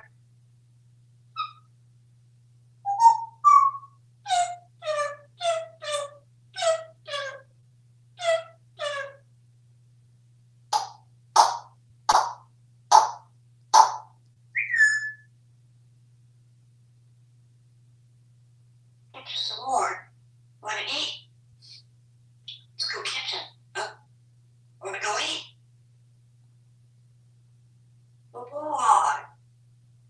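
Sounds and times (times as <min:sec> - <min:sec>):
parrot calls: 0:01.4 - 0:01.7, 0:02.9 - 0:07.5, 0:08.2 - 0:09.2, 0:13.8 - 0:15.2, 0:19.2 - 0:21.8, 0:22.5 - 0:24.0, 0:24.8 - 0:25.5
parrot falling whistle: 0:14.6 - 0:15.2.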